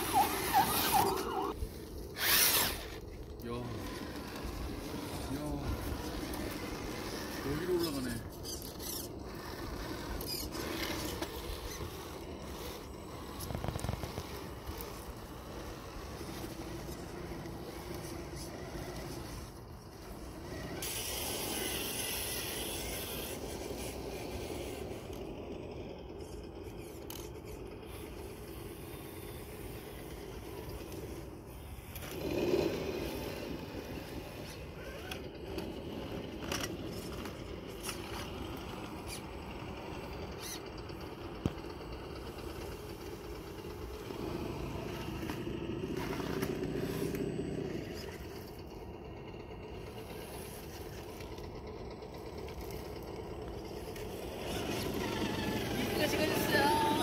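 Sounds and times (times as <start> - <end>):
electric motors whining: 0.0 - 57.0.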